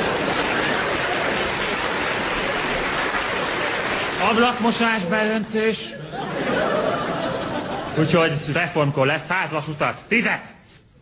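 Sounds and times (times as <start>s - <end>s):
audience applauding: 0.0s - 5.4s.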